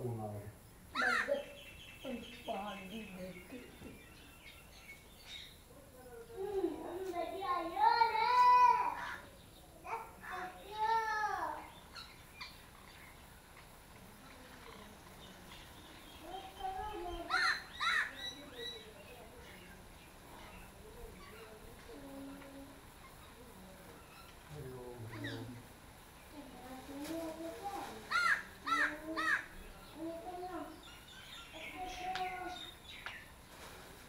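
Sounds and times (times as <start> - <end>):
bird calling loudly: 0.9 - 3.6, 16.2 - 18.9
crow cawing: 1.0 - 1.5, 17.3 - 18.2, 28.1 - 29.6.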